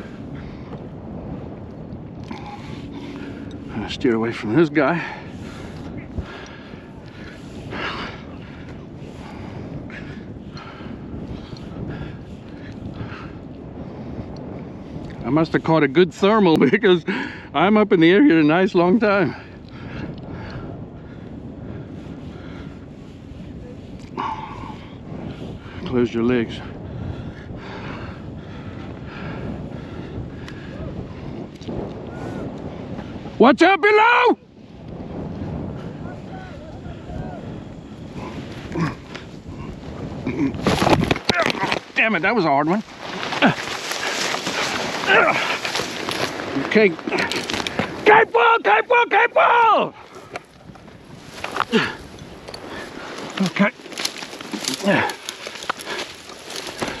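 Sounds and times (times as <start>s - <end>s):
wind rushing over microphone: 0.0s - 57.0s
rustling grass and parachute fabric: 28.2s - 57.0s
fabric dragged over dry grass: 40.6s - 48.0s.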